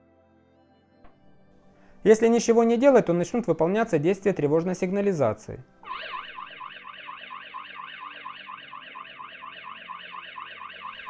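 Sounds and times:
warbling electronic alarm siren: 5.8 - 11.0.

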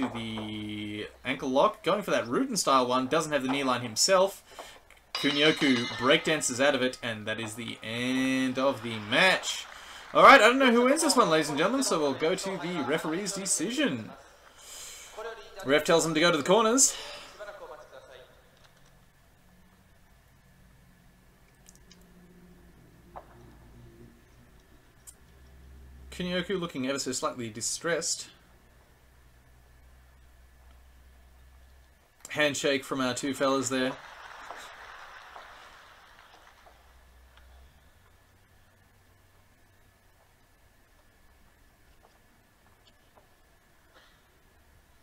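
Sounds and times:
low steady hum: 0.0 - 33.7, 36.4 - 45.0
scattered clapping: 5.2 - 14.6, 33.4 - 37.5
faint arena crowd noise: 5.2 - 19.7, 32.3 - 39.2.

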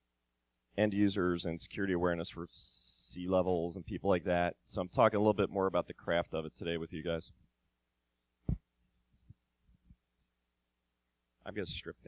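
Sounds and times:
microphone handling thumps: 8.4 - 8.7.

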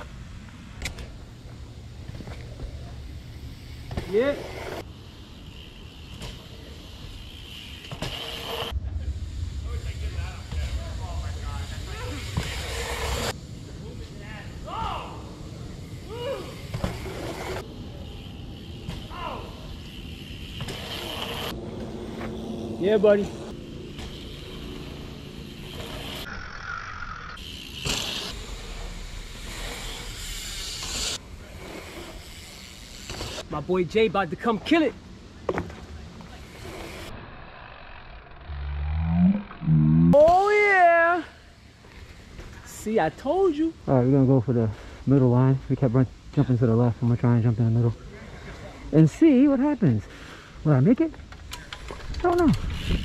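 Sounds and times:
bike tyres rolling on dirt: 0.0 - 53.0.

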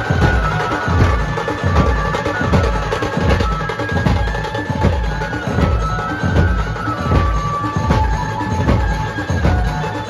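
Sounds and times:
held melody line: 0.0 - 10.0
large drums beaten fast: 0.0 - 10.0.

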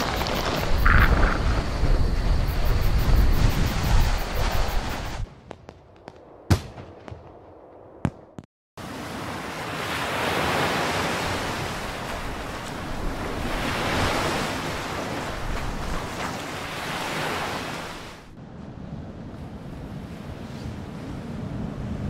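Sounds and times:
waves on rocky shore: 8.8 - 18.3.

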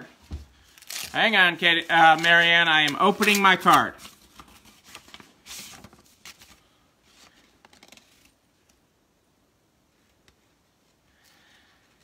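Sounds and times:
paper rustling: 0.2 - 8.4.

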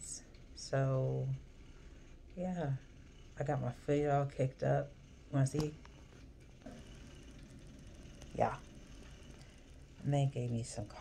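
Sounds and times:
faint rapid high ticking: 0.0 - 11.0
low steady hum: 0.0 - 11.0.

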